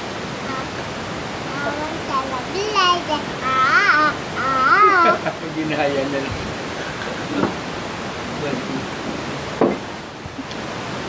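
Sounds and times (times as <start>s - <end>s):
steady broad hiss: 0.0s - 11.0s.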